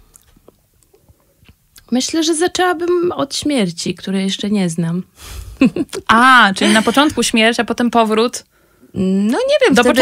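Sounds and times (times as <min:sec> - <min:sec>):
woman speaking: 0:01.8 - 0:05.1, 0:05.8 - 0:10.0.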